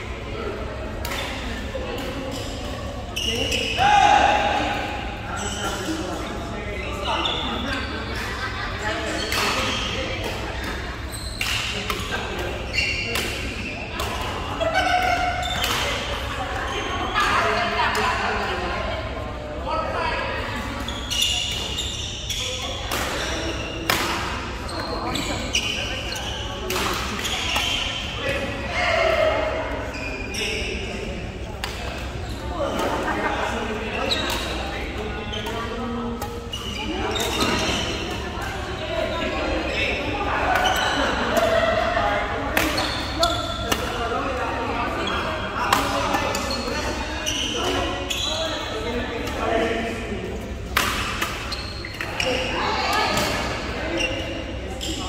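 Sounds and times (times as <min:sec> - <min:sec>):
rackets hitting shuttlecock: 0:42.5 - 0:44.0.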